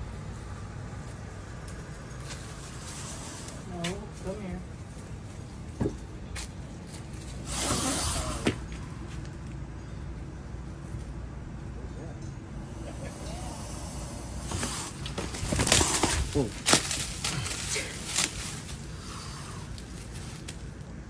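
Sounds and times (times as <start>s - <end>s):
alligator hissing: 7.4s - 8.6s, 12.6s - 16.4s, 18.9s - 19.8s.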